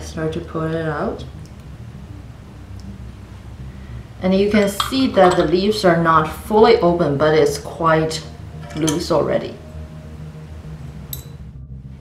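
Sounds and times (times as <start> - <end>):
steady low hum: 0.0 - 12.0
porcelain lid clinking: 4.7 - 5.6.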